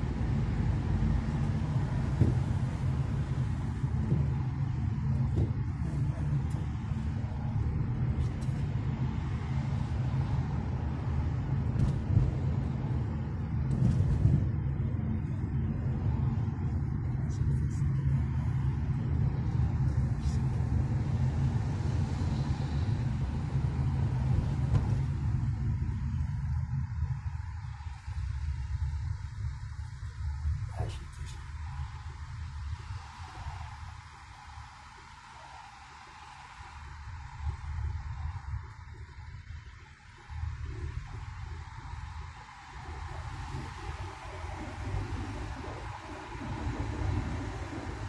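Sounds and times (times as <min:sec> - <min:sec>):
car engine and road rumble: 0:00.0 - 0:48.0.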